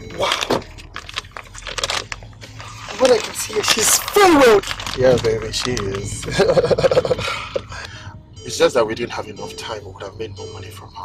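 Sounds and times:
men laughing: 6.0 - 8.0.

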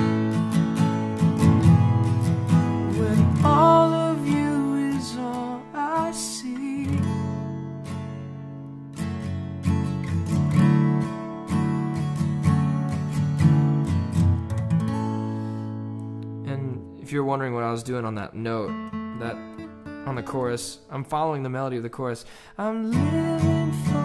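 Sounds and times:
acoustic guitar strumming: 0.0 - 21.8, 22.8 - 24.0.

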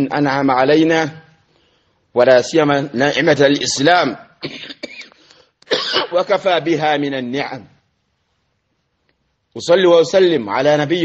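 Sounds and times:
man speaking: 2.1 - 4.4, 5.9 - 7.8, 9.5 - 11.0
man coughing: 4.4 - 6.3.

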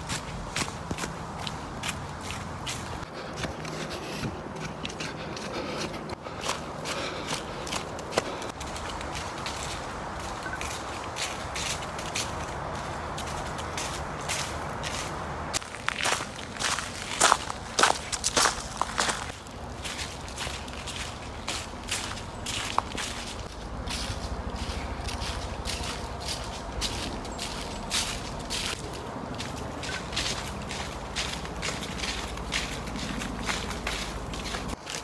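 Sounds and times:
footsteps crunching dry leaves: 0.0 - 35.0.

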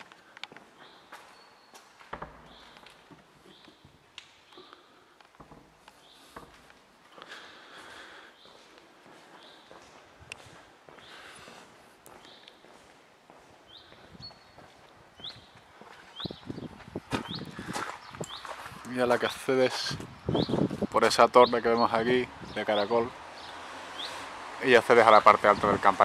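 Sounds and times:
footsteps walking: 0.0 - 20.1.

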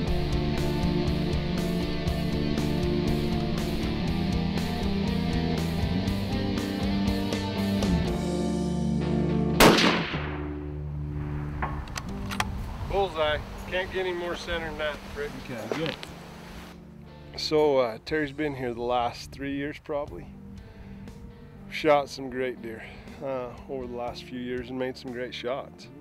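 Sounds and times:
rock music with guitar: 0.0 - 12.6, 15.8 - 17.8, 20.3 - 22.0
loud rifle shot with echo: 9.6 - 11.8.

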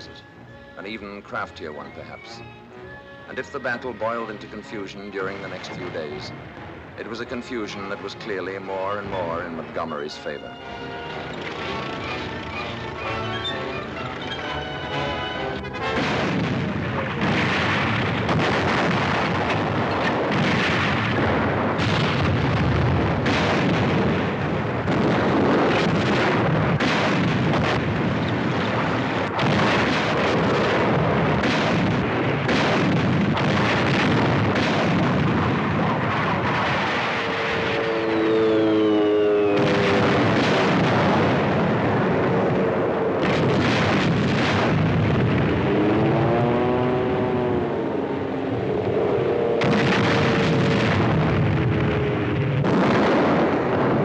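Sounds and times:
film score: 0.0 - 54.0
explosions and artillery fire: 3.4 - 10.4, 11.3 - 13.2, 15.6 - 54.0
pitched whine: 36.9 - 40.4.

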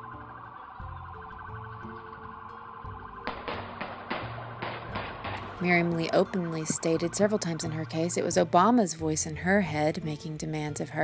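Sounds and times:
police siren pulsing: 0.0 - 8.4
low background music: 0.0 - 11.0.

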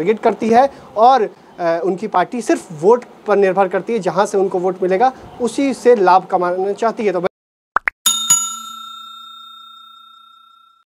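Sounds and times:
bright bell ding: 8.1 - 10.8.

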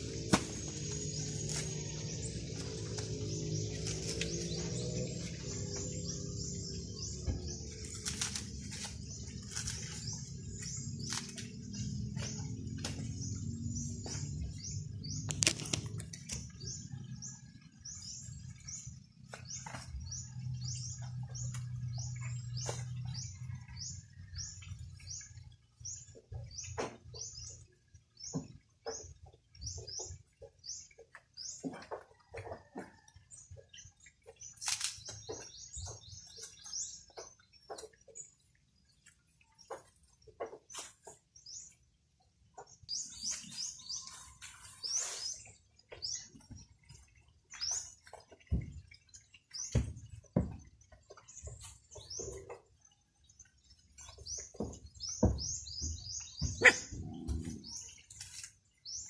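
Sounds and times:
coconut husks knocking: 0.0 - 4.8
low hum: 0.0 - 23.8.

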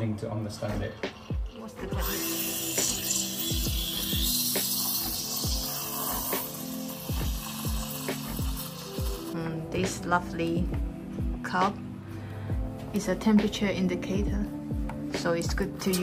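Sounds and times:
steam wand hissing: 1.0 - 9.3
music with deep beat: 1.1 - 11.8, 12.5 - 16.0.

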